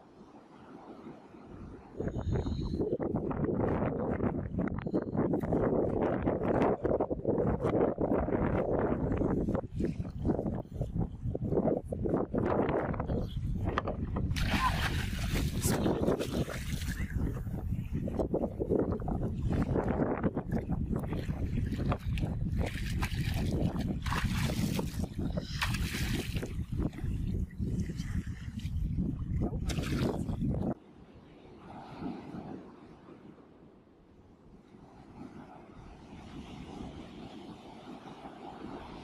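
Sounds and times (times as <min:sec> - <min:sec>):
wind buffeting microphone: 0:01.4 - 0:30.8
water splashing against boat hull: 0:13.7 - 0:17.3, 0:20.5 - 0:27.1
fish thrashing at the surface: 0:14.4 - 0:16.8.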